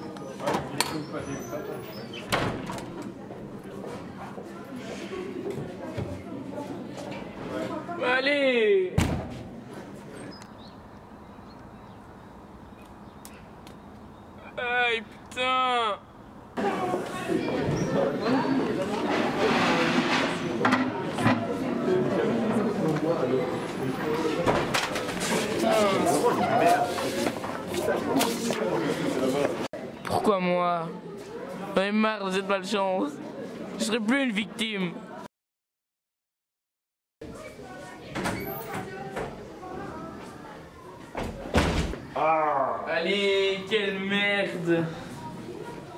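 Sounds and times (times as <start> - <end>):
door slamming shut: 2.2 - 2.9, 9.0 - 9.5, 41.2 - 42.0.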